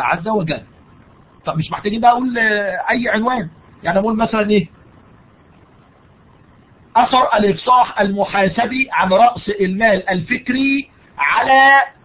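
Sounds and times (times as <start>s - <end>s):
man talking: 0.0s - 0.7s, 1.5s - 4.7s, 7.0s - 12.0s
background hiss and hum: 0.0s - 12.0s.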